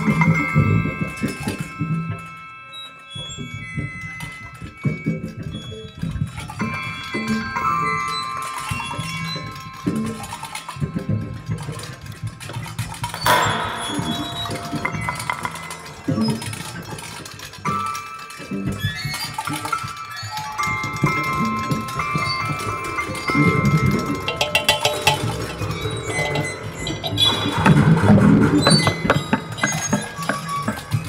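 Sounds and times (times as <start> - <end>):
ringing metal percussion: 0.0 - 31.0
low sustained tone: 8.2 - 18.1, 20.7 - 30.7
sharp percussion strikes: 13.0 - 18.3, 18.9 - 31.0.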